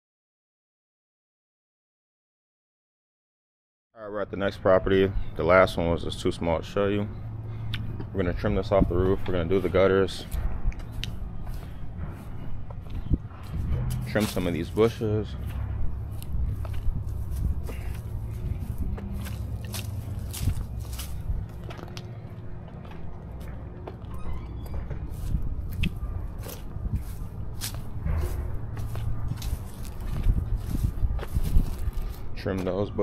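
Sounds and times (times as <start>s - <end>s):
low steady rumble: 5.1s - 32.4s
footsteps on lawn and pavement: 5.5s - 33.0s.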